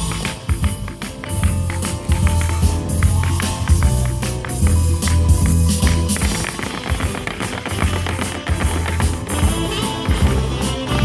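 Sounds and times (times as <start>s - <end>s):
hard shoes striking wooden board: 0.0s - 11.0s
music with bass and guitar: 0.0s - 11.0s.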